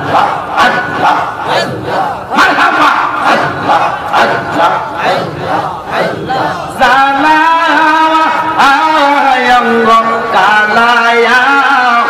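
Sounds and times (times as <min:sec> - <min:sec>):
men chanting through microphones: 0:00.0 - 0:12.0.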